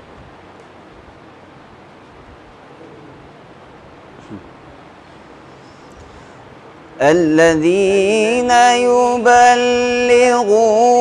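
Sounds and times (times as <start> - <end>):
faint room noise hiss: 0.0 - 11.0.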